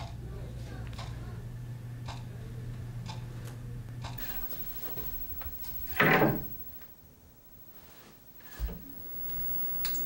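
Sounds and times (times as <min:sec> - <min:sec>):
low steady hum: 0:03.6 - 0:10.0.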